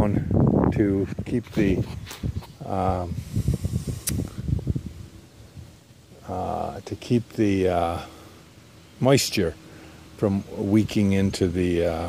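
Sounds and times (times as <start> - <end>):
wind rumbling on microphone: 0.0 - 5.8
sharp click: 4.0 - 4.3.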